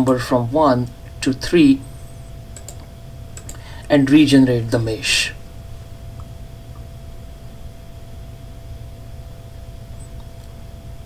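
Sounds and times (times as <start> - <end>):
faint electrical hum: 0.0 - 11.0
mouse and keyboard clicks: 1.9 - 2.8, 3.4 - 3.6.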